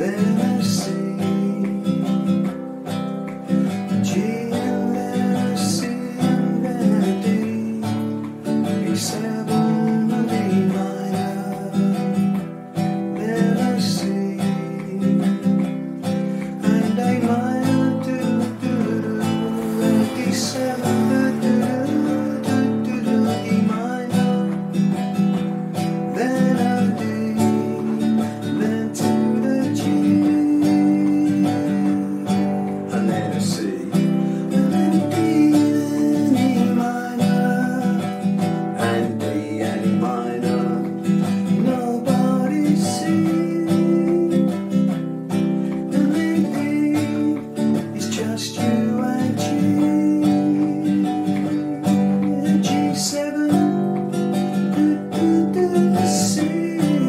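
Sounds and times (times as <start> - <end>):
acoustic guitar strumming: 0.0 - 57.0
man humming: 17.4 - 24.6.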